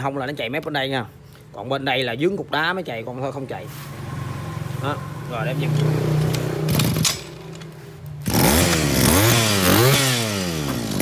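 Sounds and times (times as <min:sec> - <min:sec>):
brush cutter engine revving: 0:05.3 - 0:07.5, 0:08.2 - 0:11.0.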